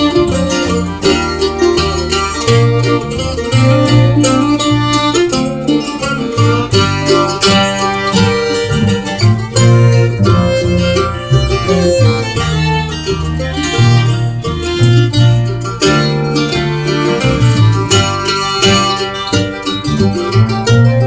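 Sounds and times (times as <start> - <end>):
acoustic guitar: 0.0 - 21.0
bowed fiddle: 0.0 - 21.0
upright bass: 0.0 - 21.0.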